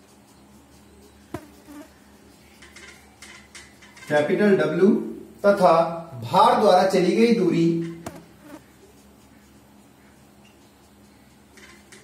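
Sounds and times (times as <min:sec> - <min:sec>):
low electrical hum: 0:00.0 - 0:12.0
marker squeaking on whiteboard: 0:01.2 - 0:02.0, 0:07.8 - 0:10.2
marker tapping whiteboard: 0:01.4 - 0:01.8, 0:07.8 - 0:08.6.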